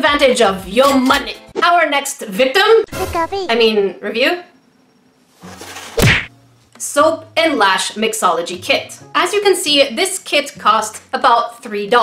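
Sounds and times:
loud whack with deep thump: 6.0s - 6.3s.

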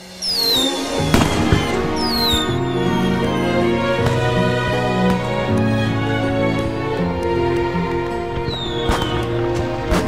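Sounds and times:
background music: 0.0s - 10.0s
firework whistle falling: 0.2s - 4.1s
firework bangs: 0.3s - 3.0s, 8.5s - 10.0s.

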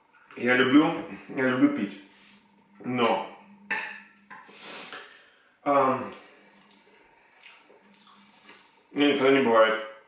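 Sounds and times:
person breathing: 4.4s - 9.0s.

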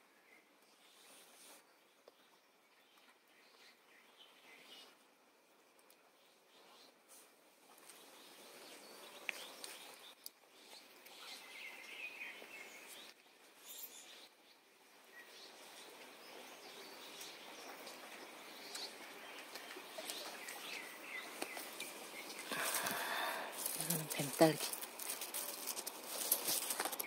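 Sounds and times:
faint steady hiss: 0.0s - 27.0s
leaves rustling: 15.1s - 27.0s.

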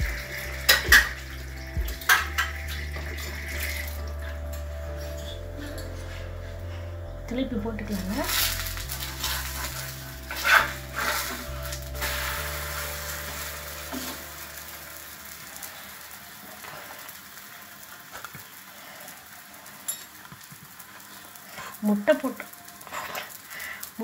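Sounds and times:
food sizzling in oil: 0.0s - 6.6s, 7.8s - 24.0s
metal spatula scraping pan: 8.0s - 14.3s.

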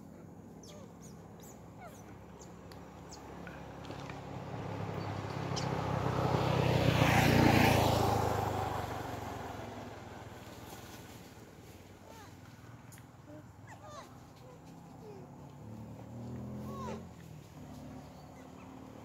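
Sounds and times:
vehicle passing by: 0.0s - 19.0s.

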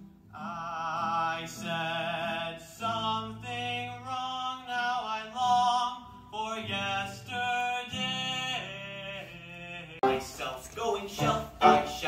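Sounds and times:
acoustic guitar chords: 0.0s - 12.0s
young man singing: 0.4s - 12.0s.

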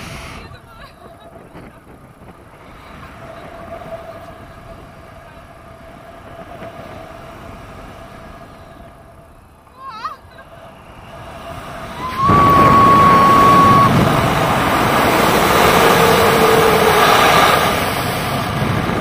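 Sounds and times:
wind rushing over microphone: 0.0s - 19.0s
steady high tone: 8.4s - 17.8s
wavering high sound: 9.8s - 17.8s.

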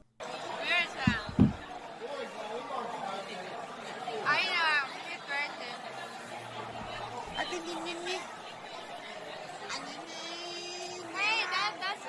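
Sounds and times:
babble of diners' voices: 0.0s - 12.0s.

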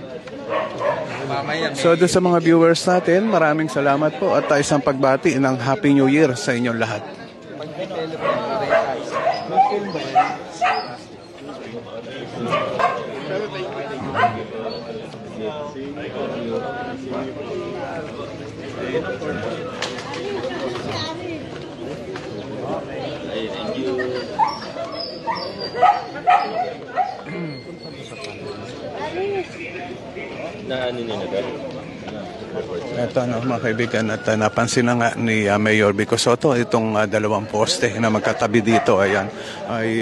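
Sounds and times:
distant people talking: 0.0s - 40.0s
people chattering: 0.0s - 40.0s
dog barking: 0.5s - 1.2s, 4.3s - 4.7s, 8.2s - 11.0s, 12.4s - 13.1s, 14.0s - 14.5s, 24.4s - 27.2s, 38.2s - 39.2s.

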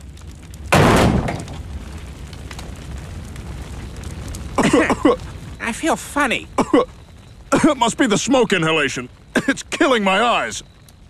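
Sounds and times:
faint fire crackles: 0.0s - 11.0s
low fire rumble: 0.0s - 11.0s
loud crash: 0.7s - 1.6s.

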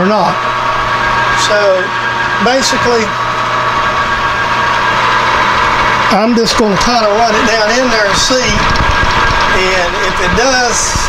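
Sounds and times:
high machine whine: 0.0s - 11.0s
metal lathe running: 0.0s - 11.0s.

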